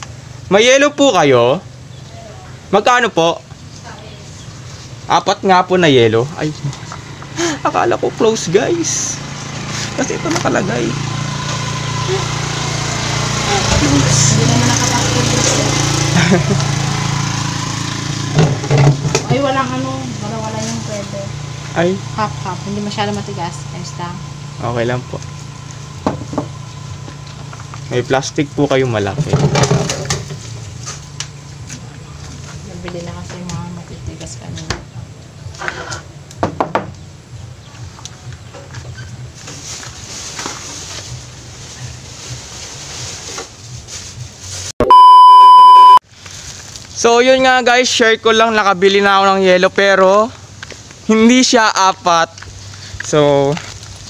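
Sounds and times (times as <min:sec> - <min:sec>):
low outdoor rumble: 0:00.0 - 0:44.7
small engine idling: 0:03.5 - 0:32.8
high electronic beep: 0:44.8 - 0:46.0.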